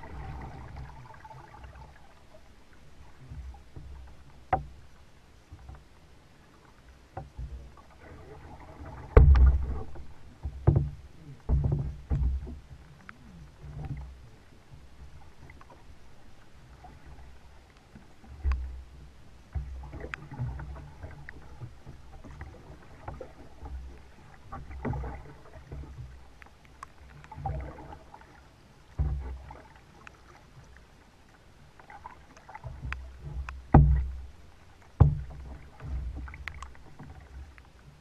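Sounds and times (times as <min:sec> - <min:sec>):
paddle strokes splashing water: 0:00.0 - 0:38.0
sharp knocks and low thumps: 0:09.1 - 0:12.7, 0:32.7 - 0:34.3, 0:35.0 - 0:37.2.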